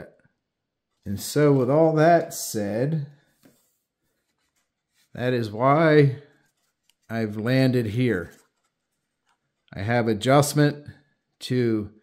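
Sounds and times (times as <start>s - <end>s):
hands rubbing wooden model: 3.2s - 9.8s.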